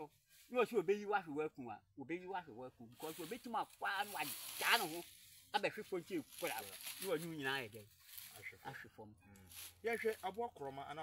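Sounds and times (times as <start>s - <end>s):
man talking: 0.0s - 11.0s
faint steady high hiss: 2.9s - 8.5s.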